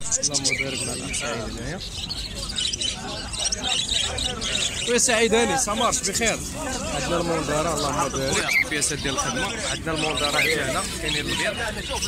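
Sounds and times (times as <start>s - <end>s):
people talking: 0.0s - 12.0s
small birds chirping: 0.0s - 12.0s.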